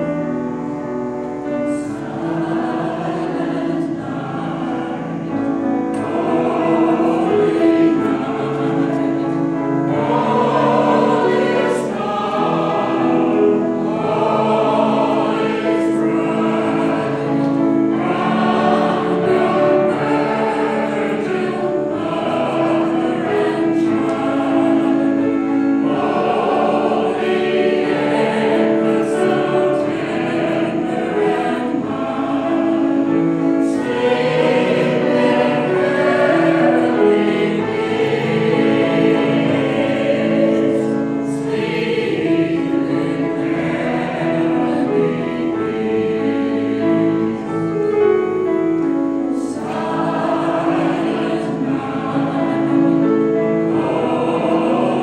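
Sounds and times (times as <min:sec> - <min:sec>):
mixed choir singing carols: 0:00.0 - 0:55.0.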